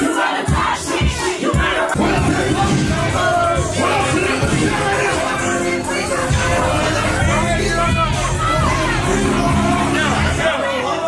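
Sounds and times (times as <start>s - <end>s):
hip hop beat with bass kicks: 0.0s - 10.7s
crowd shouting along: 0.0s - 11.0s.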